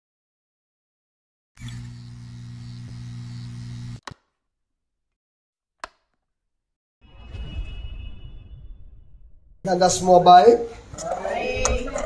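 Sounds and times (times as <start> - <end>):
electrical hum with hiss: 1.6 - 4.0.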